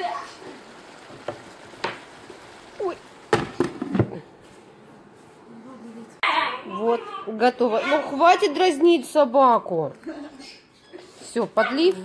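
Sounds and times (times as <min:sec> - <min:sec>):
food sizzling in a skillet: 0:00.0 - 0:03.9.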